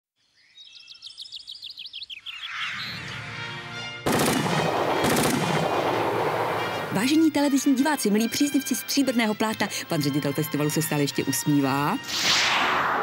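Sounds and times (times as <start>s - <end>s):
sharp gunshot-like cracks: 4.1s - 6.9s.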